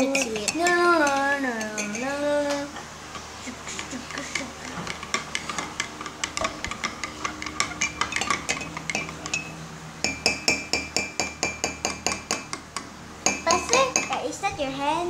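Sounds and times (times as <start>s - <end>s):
spoon clinking in ceramic mug: 0.0s - 2.1s, 3.8s - 12.6s.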